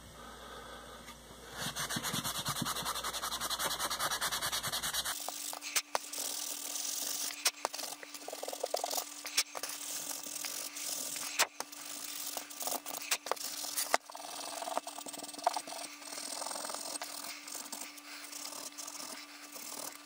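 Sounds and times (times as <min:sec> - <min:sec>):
abrasive scratching on metal: 0:01.7 - 0:20.0.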